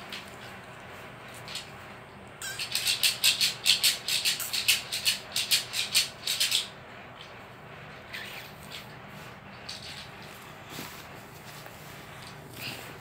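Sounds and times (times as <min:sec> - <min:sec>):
plastic rattle shaken fast: 0:02.4 - 0:06.7.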